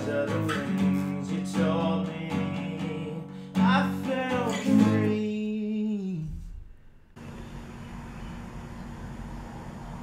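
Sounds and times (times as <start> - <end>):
acoustic guitar strummed chord: 0.0 - 5.4
man singing: 0.0 - 6.6.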